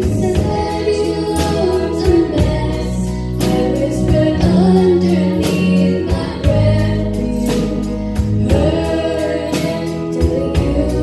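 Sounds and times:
girl singing lead melody: 0.0s - 11.0s
live band playing slow song: 0.0s - 11.0s.

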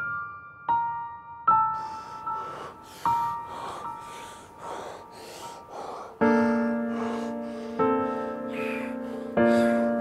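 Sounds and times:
soft piano music: 0.0s - 10.0s
man gasping: 1.8s - 10.0s.

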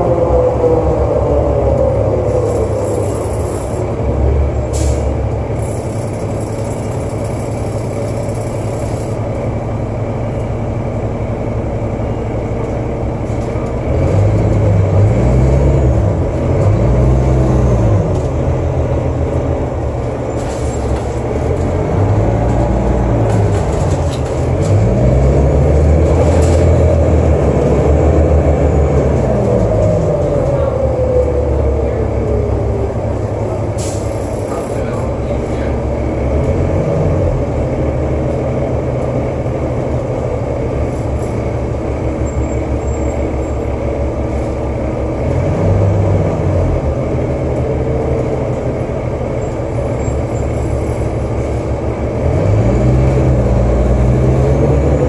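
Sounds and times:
bus diesel engine: 0.0s - 55.0s.

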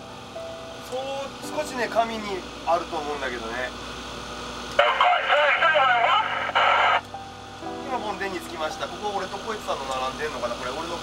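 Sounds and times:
radio static burst: 4.8s - 7.0s
voice over two-way radio: 4.8s - 7.0s.

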